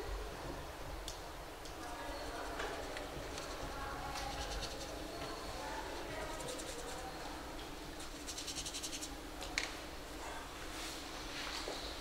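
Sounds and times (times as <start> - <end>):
murmur of distant voices: 0.0 - 12.0
rapid scratchy ticking: 2.7 - 5.1, 6.2 - 7.0, 8.0 - 9.1.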